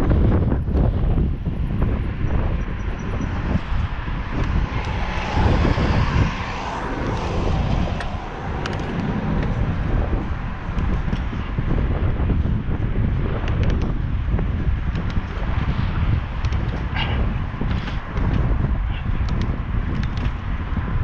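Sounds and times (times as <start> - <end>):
wind buffeting microphone: 0.0 - 21.0
bus passing close by: 2.2 - 12.6.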